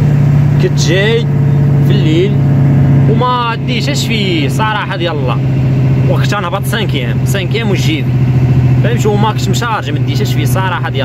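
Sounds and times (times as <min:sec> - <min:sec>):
diesel truck engine droning: 0:00.0 - 0:11.0.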